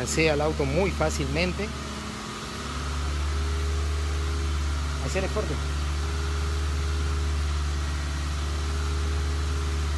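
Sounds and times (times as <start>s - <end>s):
low mechanical hum: 0.0s - 9.9s.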